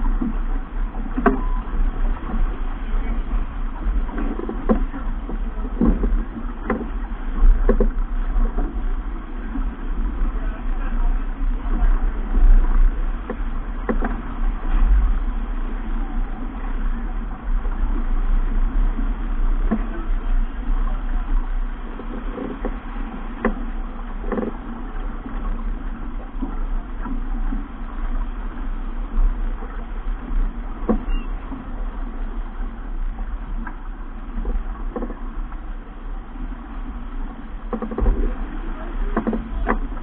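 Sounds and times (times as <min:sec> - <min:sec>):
water rushing past hull: 0:00.0 - 0:40.0
wind buffeting microphone: 0:00.0 - 0:40.0.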